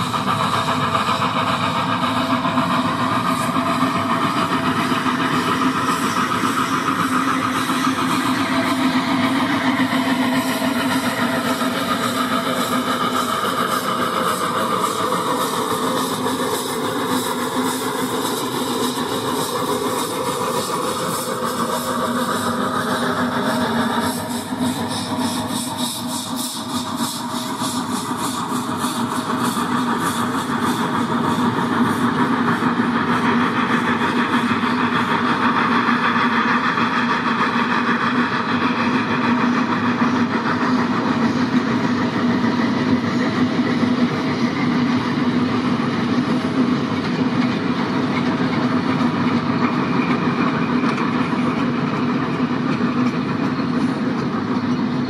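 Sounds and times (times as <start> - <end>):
steam locomotive exhaust beats: 0.0 - 55.0
train wheels rumbling on track: 0.0 - 55.0.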